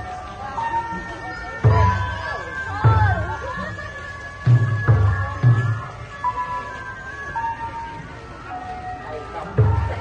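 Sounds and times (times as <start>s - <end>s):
slow melody of held notes: 0.0s - 10.0s.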